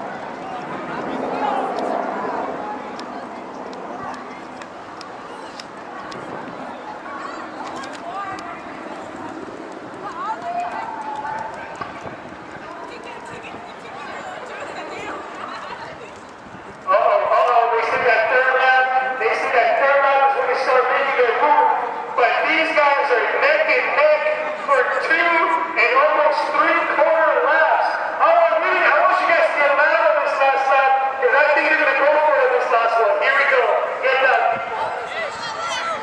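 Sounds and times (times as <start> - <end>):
outdoor background noise: 0.0 - 36.0
people talking and calling out: 0.0 - 36.0.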